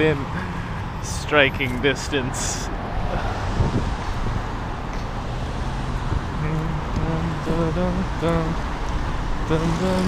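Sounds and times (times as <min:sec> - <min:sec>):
cars driving past: 0:00.0 - 0:10.0.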